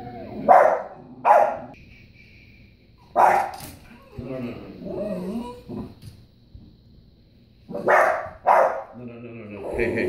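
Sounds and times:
dog barking: 0:00.4 - 0:01.8, 0:03.2 - 0:03.6, 0:07.7 - 0:09.0
dog whining: 0:03.8 - 0:06.0.

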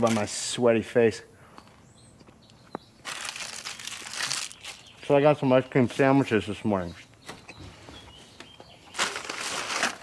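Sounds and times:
wrapper crinkling: 0:03.0 - 0:04.9, 0:08.9 - 0:10.0.

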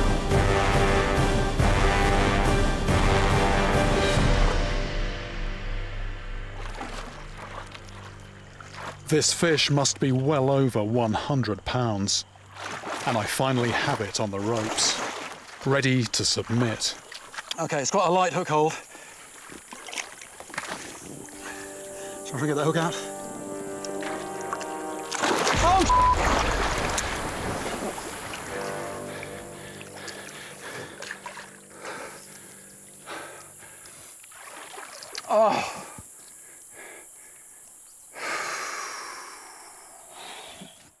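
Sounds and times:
water splashing against raft: 0:06.5 - 0:10.3, 0:12.1 - 0:21.7, 0:23.7 - 0:32.3, 0:34.2 - 0:36.0
man grunting: 0:35.3 - 0:35.9.

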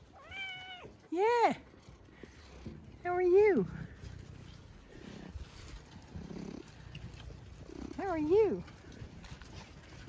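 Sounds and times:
cat purring: 0:01.7 - 0:10.0.

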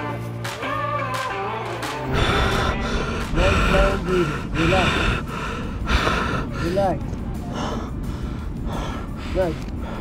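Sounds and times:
person gasping breaths: 0:02.1 - 0:06.8, 0:07.5 - 0:10.0.

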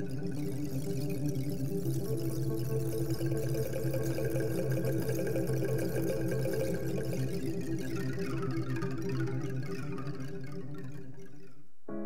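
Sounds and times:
pouring trickling sound effect: 0:00.0 - 0:11.4.

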